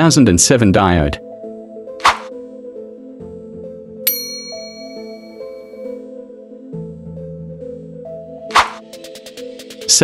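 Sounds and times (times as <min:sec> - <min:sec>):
background music: 0:00.0 - 0:10.0
small bell ding: 0:04.1 - 0:05.9.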